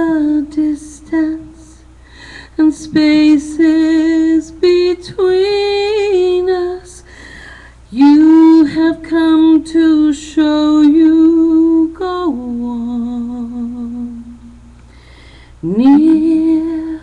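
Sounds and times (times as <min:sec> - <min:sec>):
woman singing a cappella: 0:00.0 - 0:07.3, 0:07.9 - 0:14.8, 0:15.6 - 0:17.0
breath: 0:02.0 - 0:02.6, 0:07.1 - 0:07.8, 0:14.9 - 0:15.6.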